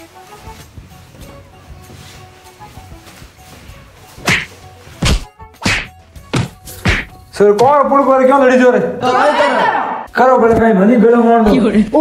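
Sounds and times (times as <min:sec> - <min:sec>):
sharp slaps: 0:04.2 - 0:07.2.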